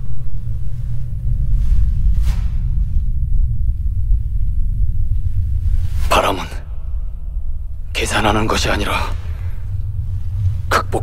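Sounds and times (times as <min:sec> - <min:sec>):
wind blowing: 0:00.0 - 0:11.0.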